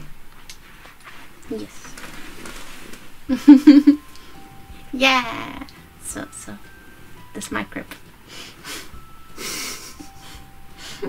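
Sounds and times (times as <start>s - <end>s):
woman laughing softly: 3.3s - 4.0s, 8.7s - 11.0s.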